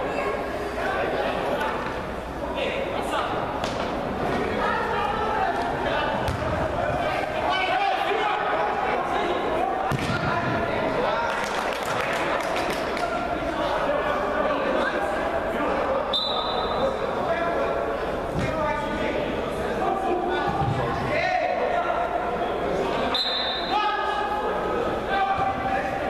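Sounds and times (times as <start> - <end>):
shouts and chatter in indoor hall: 0.0 - 26.0
football being kicked: 6.3 - 6.6, 9.9 - 10.6.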